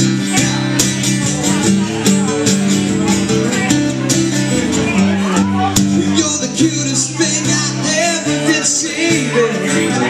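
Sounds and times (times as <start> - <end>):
acoustic guitars strummed: 0.0 - 10.0.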